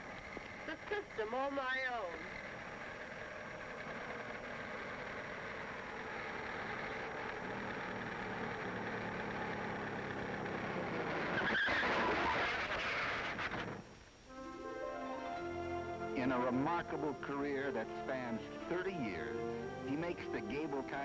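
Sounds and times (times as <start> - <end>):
car engine hum: 0.0 - 21.0
tyres skidding: 0.0 - 21.0.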